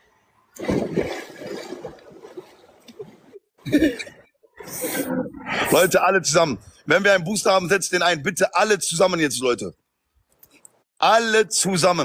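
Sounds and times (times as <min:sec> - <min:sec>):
water splashing and churning: 0:00.6 - 0:03.5.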